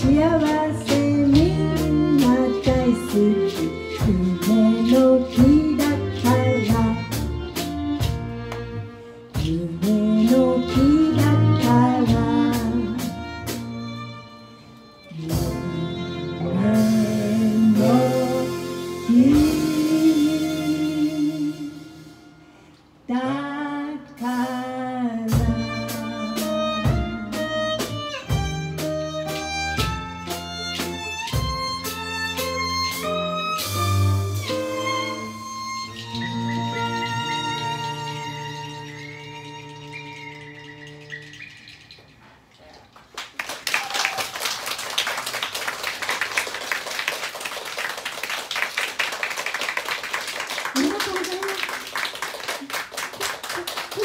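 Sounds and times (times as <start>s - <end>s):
violin: 0.0s - 41.6s
double bass: 0.0s - 42.5s
person singing: 9.4s - 13.1s, 15.1s - 21.9s
hand percussion: 34.4s - 42.8s
audience applause: 42.9s - 54.0s.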